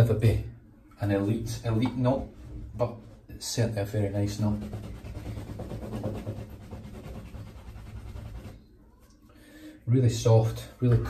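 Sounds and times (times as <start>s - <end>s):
shaving brush swishing lather: 4.0s - 9.1s.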